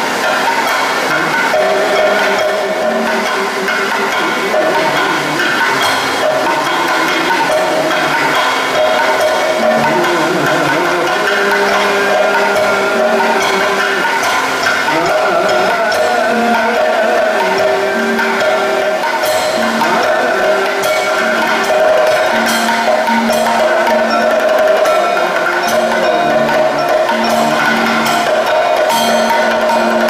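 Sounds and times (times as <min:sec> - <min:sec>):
drum beaten with a stick: 0:00.0 - 0:30.0
sustained melodic line: 0:00.0 - 0:30.0.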